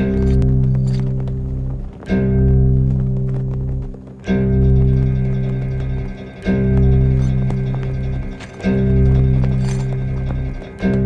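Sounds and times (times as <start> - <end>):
deep low trailer chord: 0.0 - 11.0.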